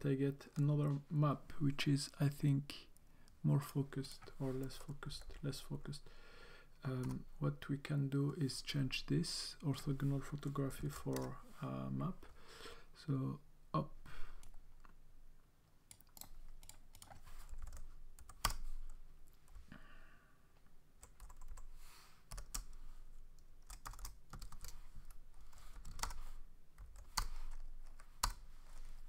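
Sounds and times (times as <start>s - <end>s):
typing on computer keyboard: 21.0s - 21.7s, 22.3s - 22.7s, 23.6s - 24.8s, 25.8s - 26.2s.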